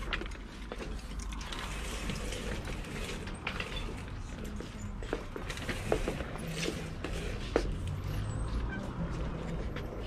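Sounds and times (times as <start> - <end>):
trolley rattling on wooden floor: 0.0 - 7.8.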